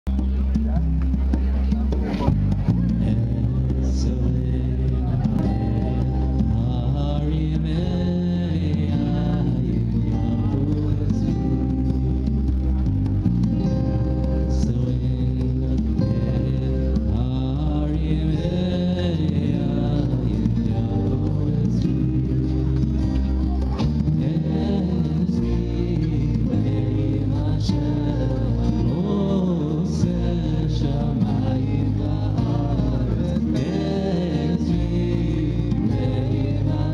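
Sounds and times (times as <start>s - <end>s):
amplified acoustic guitar: 0.0s - 36.9s
man singing: 1.8s - 36.9s.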